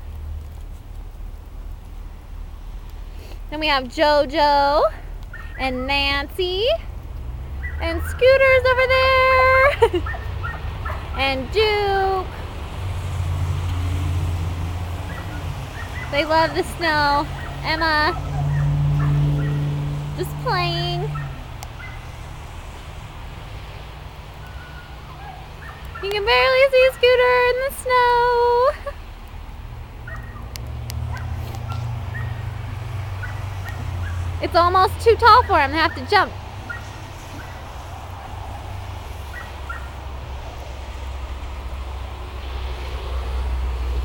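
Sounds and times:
outdoor rumble and hiss: 0.0s - 44.0s.

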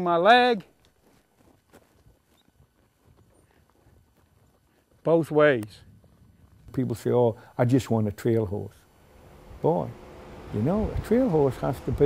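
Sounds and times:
horse hoofbeats on dirt: 0.5s - 7.3s.

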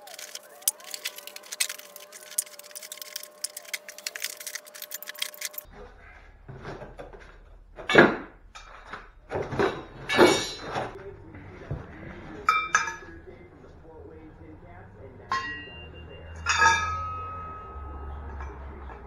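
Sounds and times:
metal parts knocking: 0.0s - 5.7s, 6.5s - 11.0s
ringing metallic clinks: 15.3s - 19.0s.

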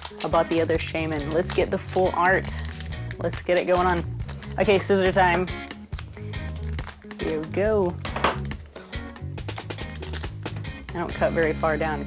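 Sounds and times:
foil pack rustling: 0.0s - 10.6s
background music: 0.0s - 12.0s.

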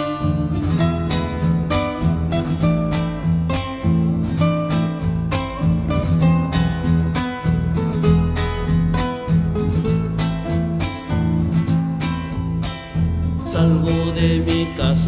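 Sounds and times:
acoustic guitar strumming: 0.0s - 15.0s
low bass line: 0.0s - 15.0s.

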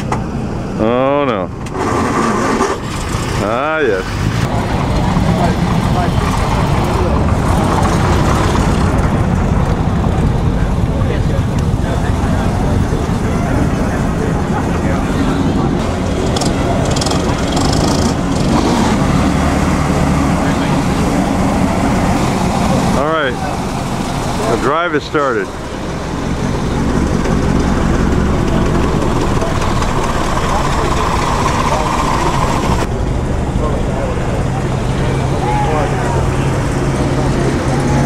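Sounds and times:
old car engines rumbling: 0.0s - 38.0s.

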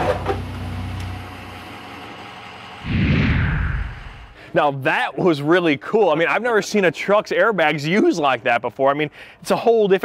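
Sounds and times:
whoosh falling in pitch: 2.8s - 4.4s.

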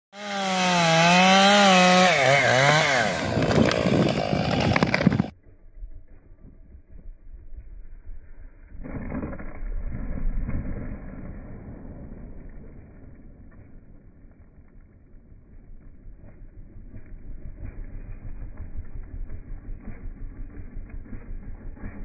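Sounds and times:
chainsaw cutting wood: 0.1s - 5.3s, 15.8s - 22.0s
wood crackling and snapping: 3.2s - 5.3s.

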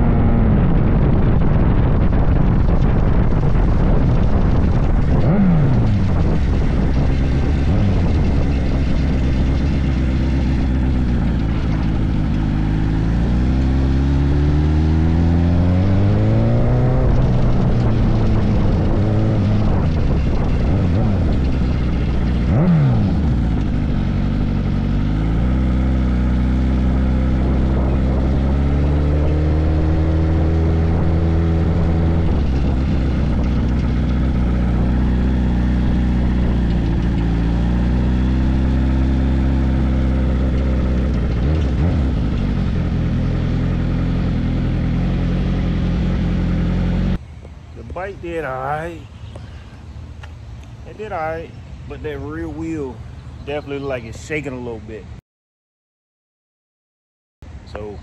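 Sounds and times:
motorcycle engine running: 0.0s - 49.5s.

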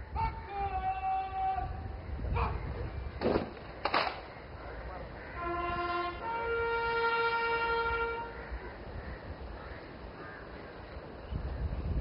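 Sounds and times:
bugle call: 5.2s - 8.4s.

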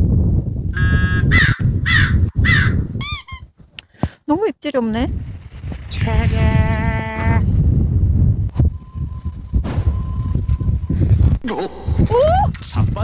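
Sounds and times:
wind buffeting microphone: 0.0s - 3.2s, 4.4s - 13.0s
low rumble: 6.0s - 12.6s
wavering hummed voice: 11.5s - 12.5s.

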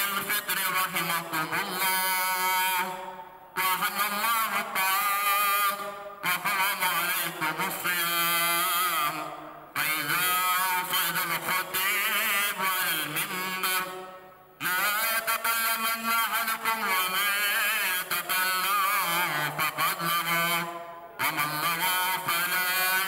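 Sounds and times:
man chanting: 0.0s - 23.0s.

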